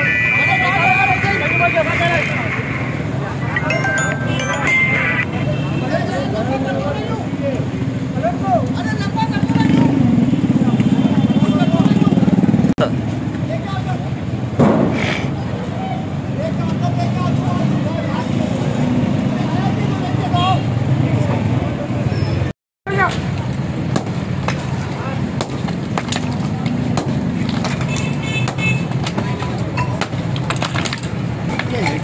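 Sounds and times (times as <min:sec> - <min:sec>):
men's voices: 0:00.0 - 0:05.2
loud metal bang: 0:14.6 - 0:15.1.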